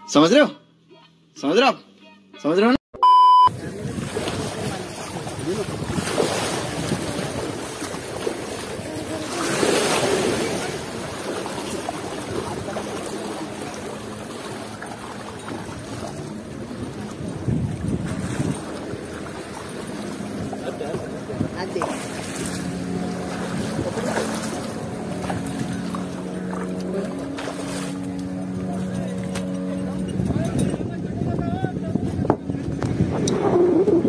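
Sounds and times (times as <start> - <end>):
electronic test-tone beep: 3.0 - 3.5
wind on microphone: 3.5 - 34.0
water splashing around wading legs: 3.9 - 30.1.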